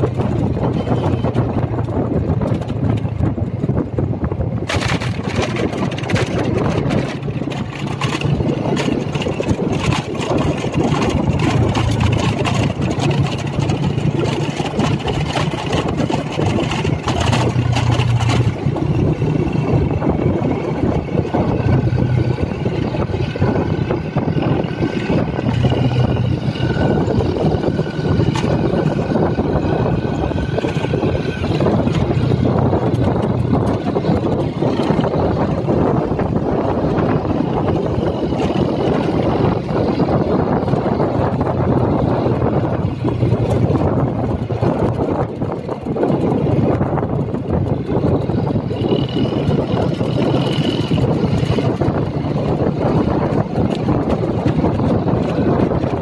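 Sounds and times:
motorbike engine running: 0.0s - 56.0s
wind buffeting microphone: 0.0s - 56.0s.

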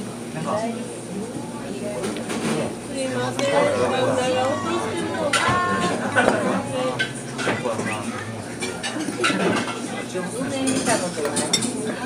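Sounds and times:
people talking: 0.4s - 12.0s.

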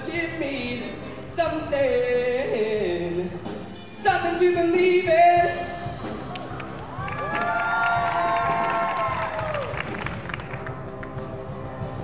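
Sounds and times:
audience cheering and applauding: 6.0s - 11.2s.

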